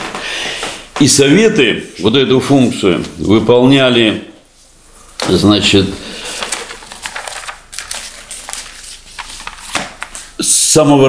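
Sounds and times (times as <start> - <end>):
paper rustling: 5.2 - 10.4.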